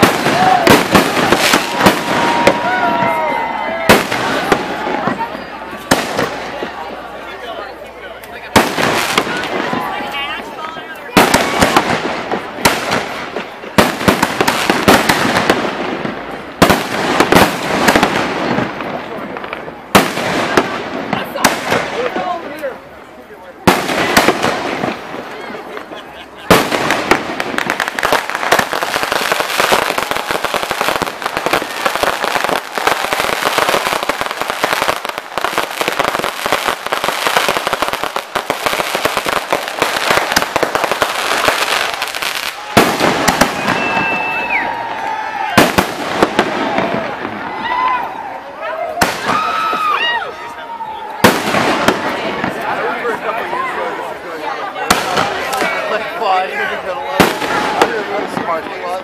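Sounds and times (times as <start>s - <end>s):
fireworks bangs: 0.0s - 59.0s
fireworks crackling: 0.0s - 59.0s.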